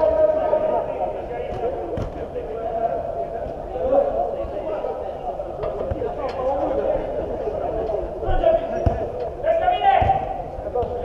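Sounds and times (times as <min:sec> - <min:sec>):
football thud: 0:01.5 - 0:02.4, 0:08.7 - 0:09.2, 0:10.0 - 0:11.0.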